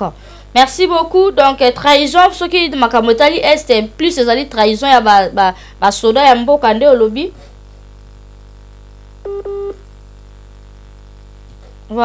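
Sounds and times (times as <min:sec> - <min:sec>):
electrical mains hum: 0:00.0 - 0:12.0
short electronic beeps: 0:09.3 - 0:09.8.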